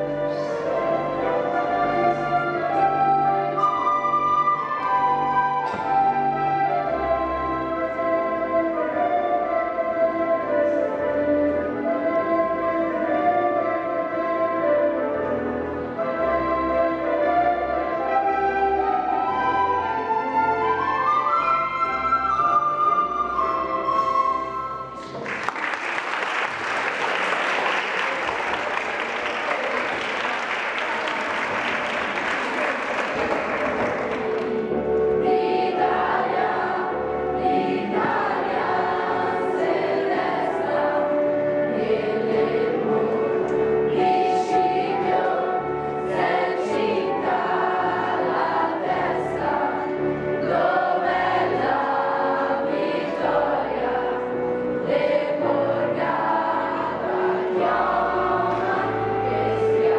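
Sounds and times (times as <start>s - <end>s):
recorder ensemble playing: 0.0s - 25.2s, 31.0s - 59.9s
children's choir singing: 0.0s - 59.9s
applause: 25.1s - 34.7s.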